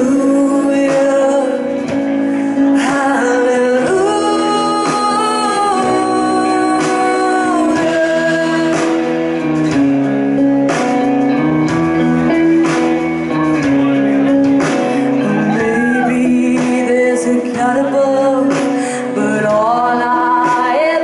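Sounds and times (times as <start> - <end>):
woman singing sliding notes: 0.0 - 9.2, 15.1 - 21.0
bass guitar: 0.0 - 21.0
electric guitar: 0.0 - 21.0.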